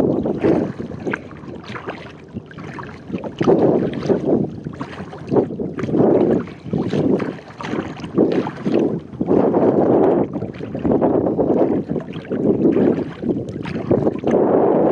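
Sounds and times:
water lapping against kayak hull: 0:00.0 - 0:14.9
wind buffeting microphone: 0:00.0 - 0:14.9.

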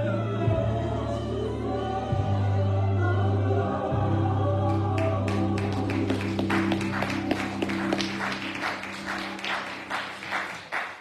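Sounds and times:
choir singing gospel: 0:00.0 - 0:10.5.

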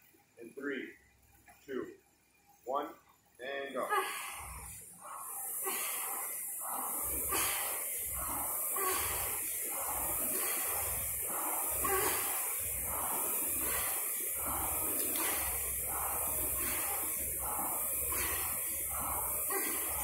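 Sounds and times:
rhythmic breathing: 0:03.2 - 0:20.0
steady hiss: 0:03.4 - 0:20.0
rowing machine flywheel whirring: 0:03.7 - 0:20.0.

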